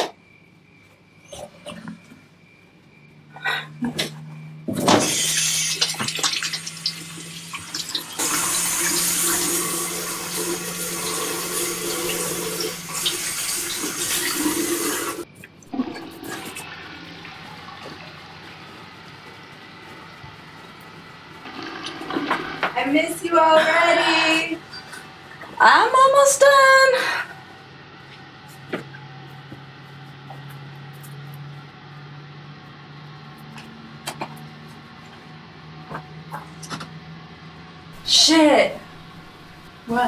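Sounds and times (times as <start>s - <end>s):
toilet flushing: 4.7s - 27.3s, 38.0s - 40.0s
toilet tank refilling hiss: 4.8s - 20.1s, 21.3s - 22.8s.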